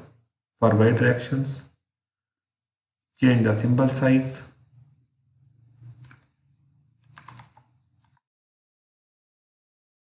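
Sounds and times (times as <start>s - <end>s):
computer keyboard typing: 7.0s - 8.2s.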